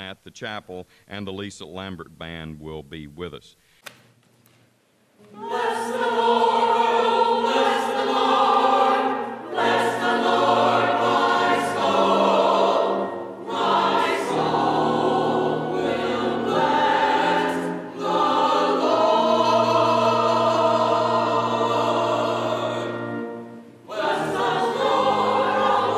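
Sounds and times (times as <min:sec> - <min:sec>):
church choir singing: 0:05.2 - 0:25.9.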